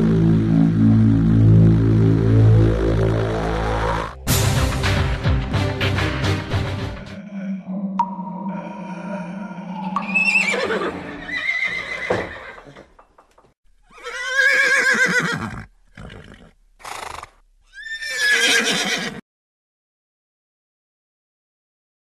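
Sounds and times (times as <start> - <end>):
horse whinnying: 10.0 - 13.0, 13.8 - 19.2.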